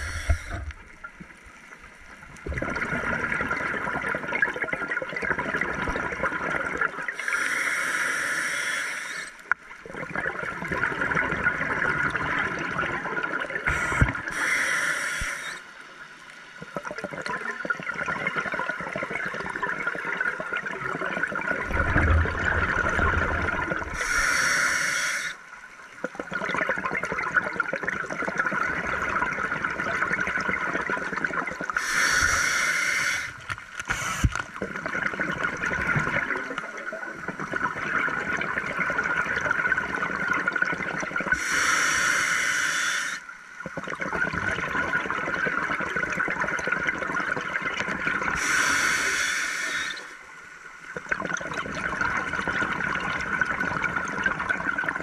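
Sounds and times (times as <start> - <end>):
regulator inhalation hiss: 0.0 - 0.7, 7.2 - 9.4, 13.7 - 15.7, 23.9 - 25.4, 31.8 - 34.4, 41.4 - 43.3, 48.4 - 50.2
bubbling and gurgling exhaust: 0.0 - 1.4, 2.1 - 7.4, 9.1 - 14.4, 16.7 - 24.8, 26.0 - 50.1, 50.9 - 55.0.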